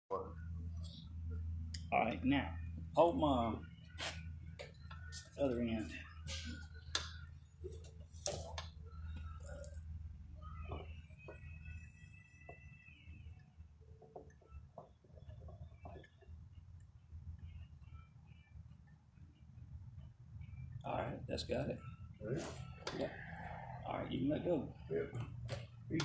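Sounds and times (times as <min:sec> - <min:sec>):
steady low hum: 0:00.1 - 0:26.0.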